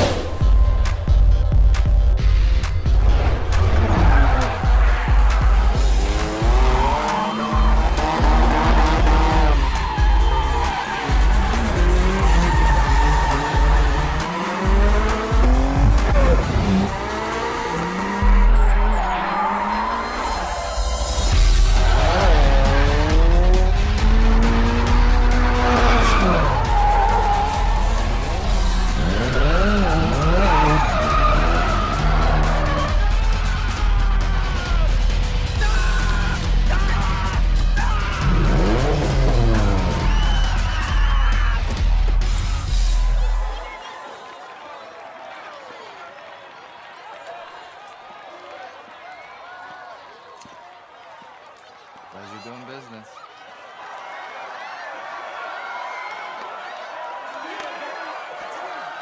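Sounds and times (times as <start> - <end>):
film score with pulsing bass: 0.0 - 19.2, 20.8 - 43.2
race car engines revving: 2.7 - 42.8
tyres squealing: 6.0 - 19.6, 28.9 - 33.0.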